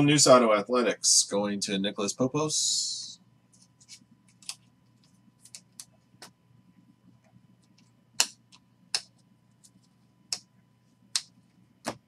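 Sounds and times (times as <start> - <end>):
trading cards clicking and sliding: 3.6 - 6.3.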